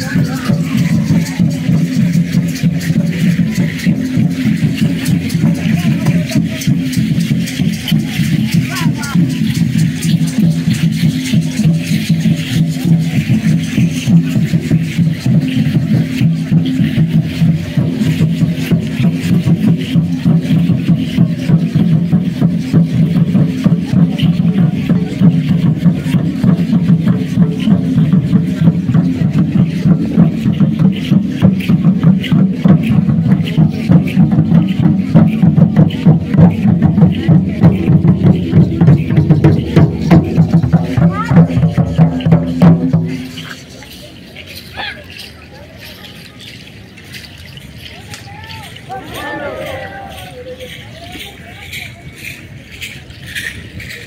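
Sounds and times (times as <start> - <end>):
drums beaten with sticks: 0.0 - 54.0.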